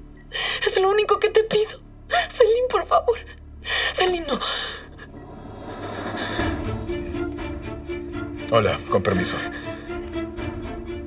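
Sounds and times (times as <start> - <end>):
music: 0.0 - 11.0
woman sobbing: 0.4 - 5.3.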